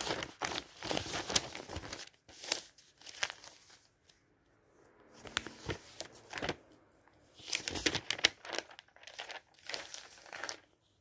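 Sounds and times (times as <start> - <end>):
paper page rustling: 0.0 - 4.2, 5.2 - 11.0.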